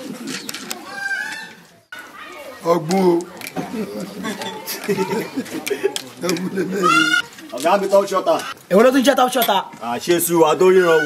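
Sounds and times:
bird calling: 0:00.0 - 0:02.6, 0:06.4 - 0:08.7, 0:10.6 - 0:11.0
faint voices: 0:00.0 - 0:11.0.

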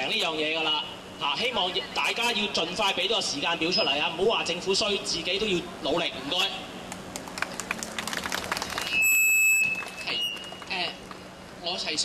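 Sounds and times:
faint whistle: 0:08.8 - 0:10.6
microphone feedback squeal: 0:08.8 - 0:10.6.

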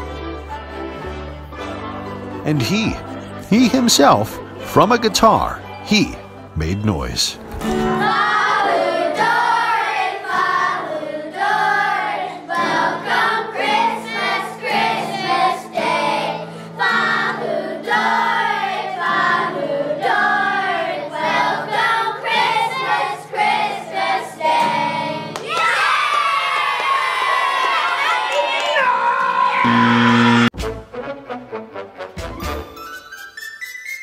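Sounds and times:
strummed acoustic guitar: 0:07.4 - 0:08.3
children singing: 0:07.8 - 0:25.3.

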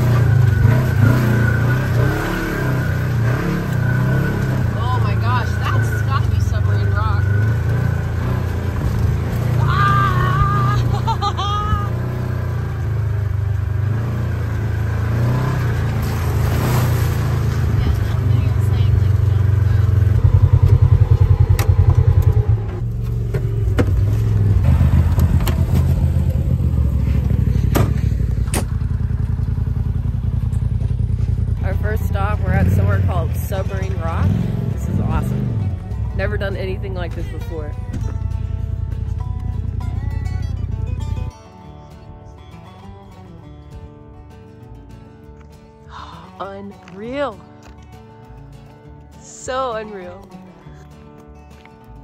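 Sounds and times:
off-road vehicle engine running: 0:00.0 - 0:52.0
voices: 0:04.2 - 0:12.0, 0:17.5 - 0:20.3, 0:31.6 - 0:38.0.

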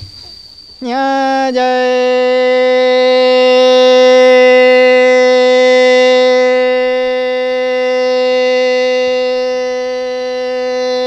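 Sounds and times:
person singing long sustained note: 0:00.8 - 0:11.0.

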